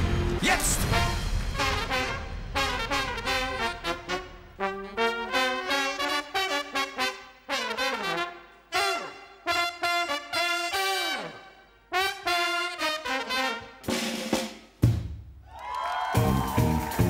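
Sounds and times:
brass band playing jazz: 0.0s - 14.6s.

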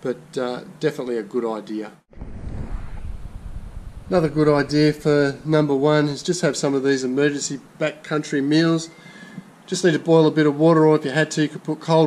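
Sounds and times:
wind buffeting microphone: 2.1s - 6.3s.

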